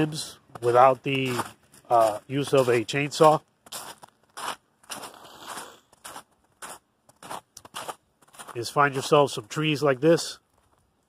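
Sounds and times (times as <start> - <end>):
footsteps crunching through snow: 0.0 - 10.9.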